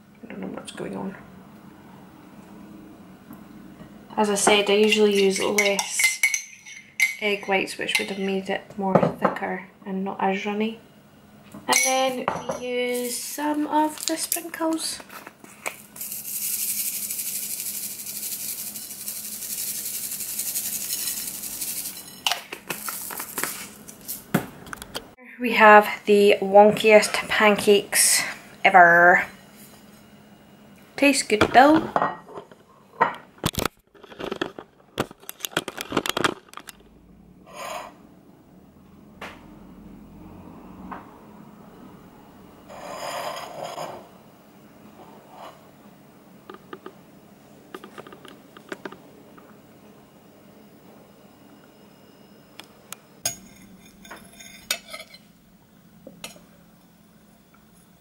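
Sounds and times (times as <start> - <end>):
sprinkles rattling in plastic shaker: 15.7 - 24.2.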